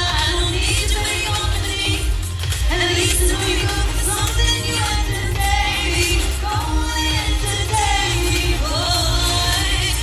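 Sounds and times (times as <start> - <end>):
woman singing: 0.0 - 10.0.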